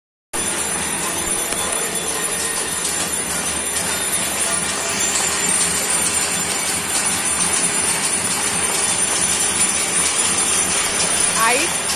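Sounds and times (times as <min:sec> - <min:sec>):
hand bells ringing: 0:00.4 - 0:11.9.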